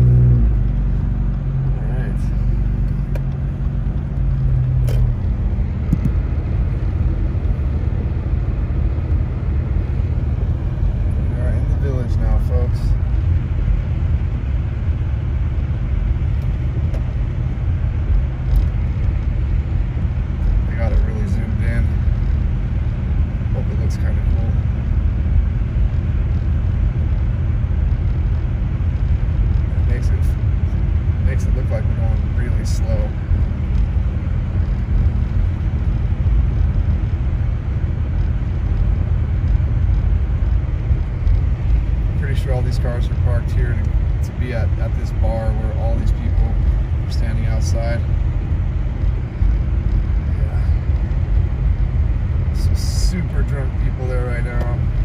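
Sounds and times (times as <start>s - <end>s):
car engine pulling: 0.0s - 55.0s
tyres rumbling on snowy road: 0.0s - 55.0s.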